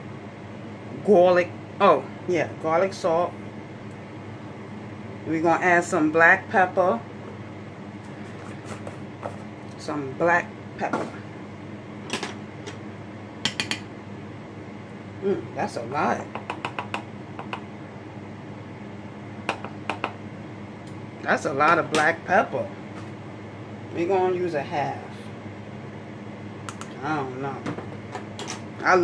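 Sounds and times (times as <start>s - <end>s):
steady low hum: 0.0s - 29.0s
pepper container clicks and taps: 13.4s - 13.8s, 16.3s - 17.6s, 19.5s - 20.2s.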